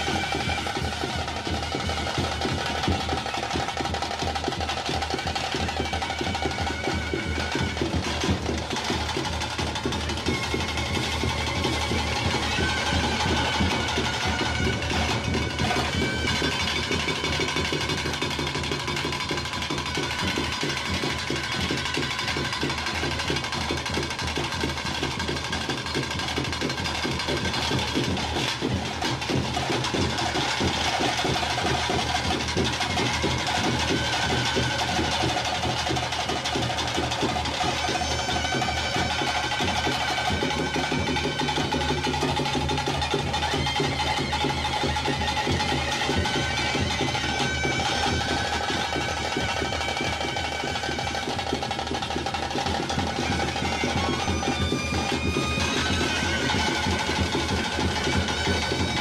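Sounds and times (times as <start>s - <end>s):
drums beaten fast: 0.0s - 59.0s
high wavering wind instrument melody: 0.0s - 59.0s.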